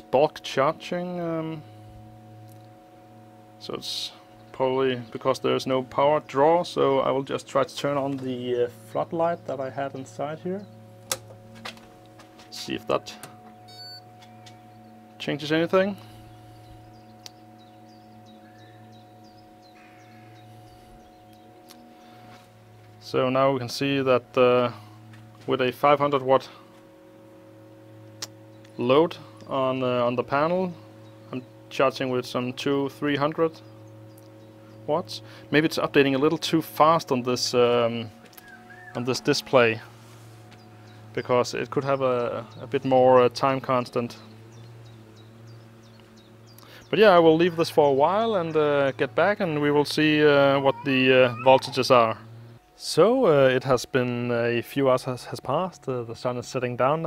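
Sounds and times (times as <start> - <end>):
electrical mains hum: 0.0 - 57.0
bird chirping: 7.8 - 11.0, 13.3 - 15.2, 16.0 - 23.0, 27.6 - 36.4, 38.0 - 39.8, 40.5 - 52.8.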